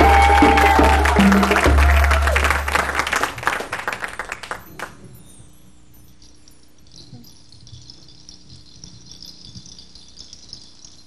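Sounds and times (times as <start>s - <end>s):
shaker rattling: 4.3s - 11.0s.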